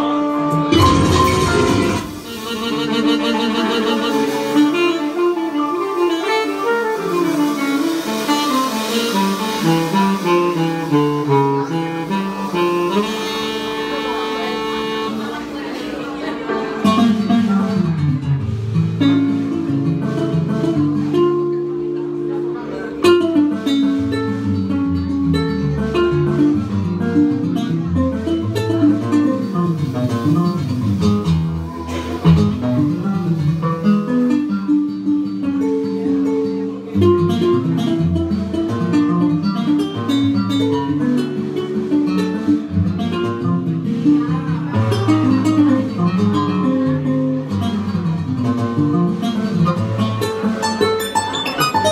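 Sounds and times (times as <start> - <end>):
live band playing latin music: 0.0 - 15.8, 31.6 - 33.1, 49.3 - 51.9.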